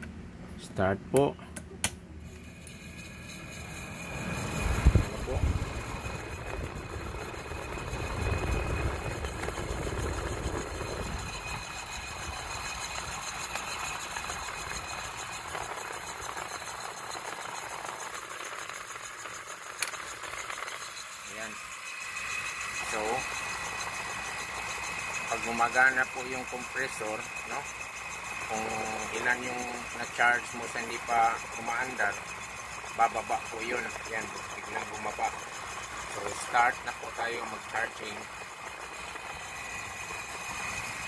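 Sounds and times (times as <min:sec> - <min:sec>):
air conditioner humming: 0:00.0 - 0:12.4
air conditioner compressor surge: 0:00.0 - 0:41.0.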